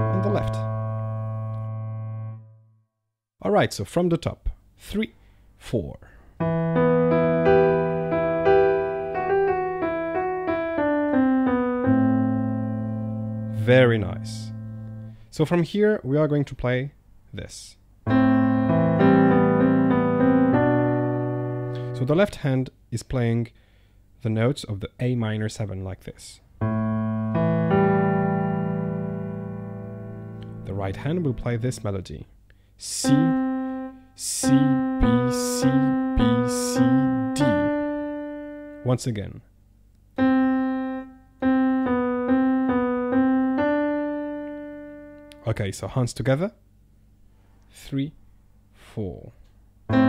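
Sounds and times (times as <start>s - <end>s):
piano playing: 0.0s - 2.7s, 6.4s - 15.2s, 18.0s - 22.3s, 26.6s - 32.0s, 32.9s - 39.0s, 40.2s - 45.5s.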